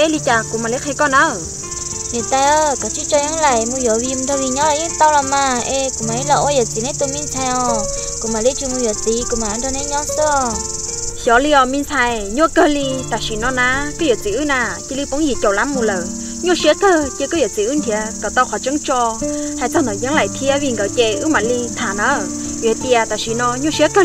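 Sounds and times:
woman talking: 0:00.0 - 0:01.5, 0:02.1 - 0:10.6, 0:11.2 - 0:24.0
insects chirring: 0:00.0 - 0:24.0
soft background music: 0:00.0 - 0:24.0.

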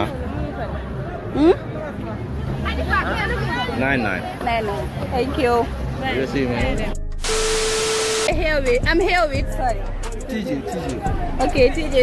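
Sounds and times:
tv static hiss: 0:07.2 - 0:08.4
steady beep tone: 0:07.2 - 0:08.5.

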